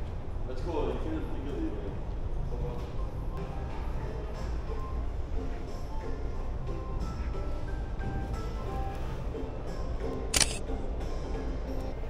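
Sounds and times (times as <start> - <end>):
background music: 0.0 - 12.0
camera shutter click: 10.3 - 10.6.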